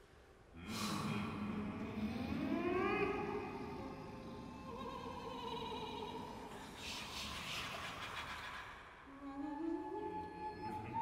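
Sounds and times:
choir singing sustained tones: 0.8s - 7.4s, 9.0s - 11.0s.

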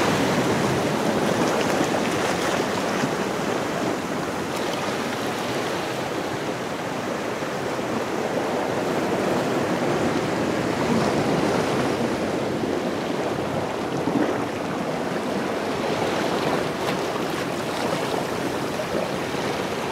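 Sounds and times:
ocean surf on rocky shore: 0.0s - 19.9s.

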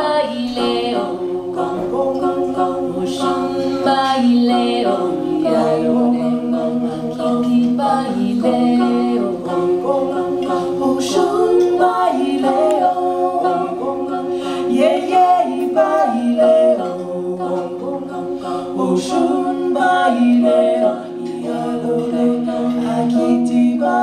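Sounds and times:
women singing a cappella: 0.0s - 24.0s.

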